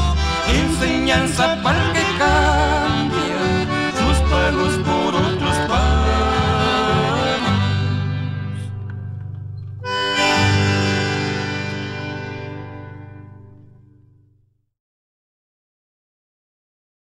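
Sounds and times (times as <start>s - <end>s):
accordion-led band playing: 0.0s - 9.2s, 9.8s - 13.5s.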